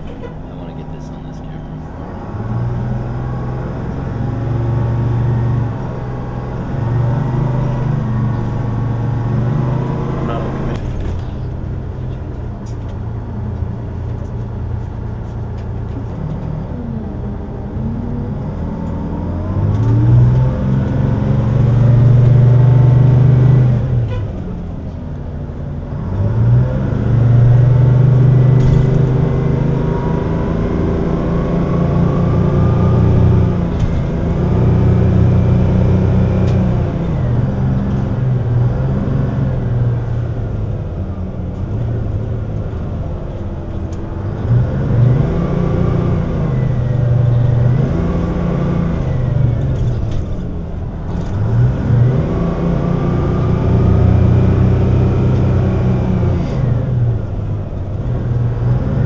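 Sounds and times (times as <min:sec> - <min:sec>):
bus engine running: 0:00.0 - 0:59.0.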